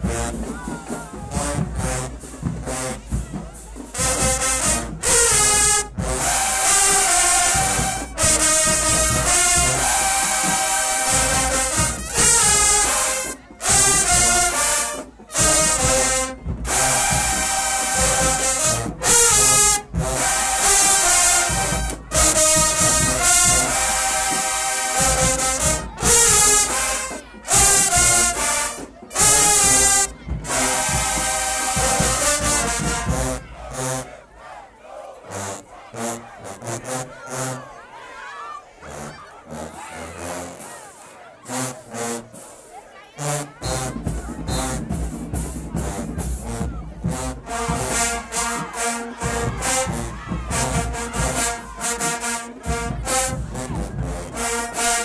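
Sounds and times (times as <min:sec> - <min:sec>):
brass band playing chords: 0:00.0 - 0:55.0.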